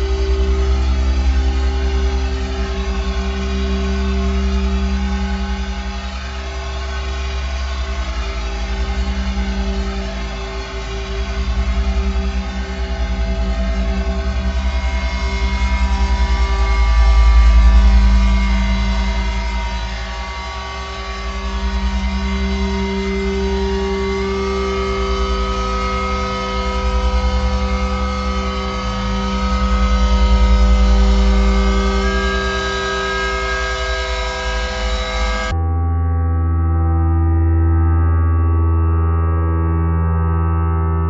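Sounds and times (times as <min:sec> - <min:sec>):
deep rumbling bass: 0:00.0 - 0:41.0
electronic drone music: 0:00.0 - 0:41.0.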